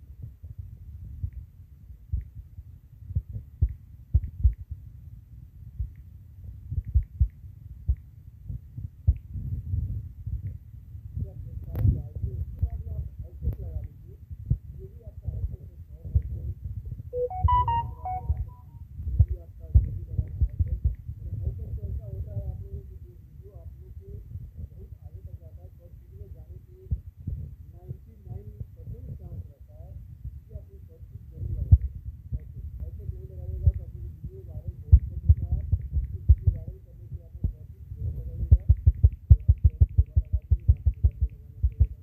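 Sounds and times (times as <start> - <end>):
phone notification beeps: 17.2 - 18.6
low rumbling background: 18.3 - 42.0.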